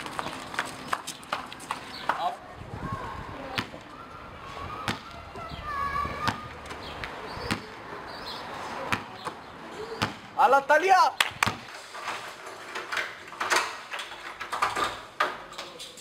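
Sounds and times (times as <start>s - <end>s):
basketball bouncing on pavement: 3.5s - 3.8s, 4.8s - 5.5s, 6.1s - 7.8s, 8.8s - 10.4s, 11.2s - 11.7s.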